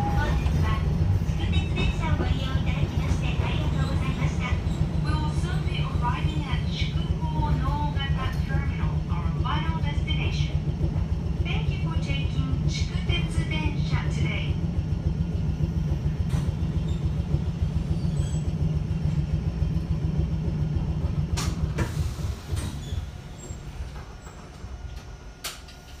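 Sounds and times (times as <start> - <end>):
train wheels rumbling: 0.0 - 26.0.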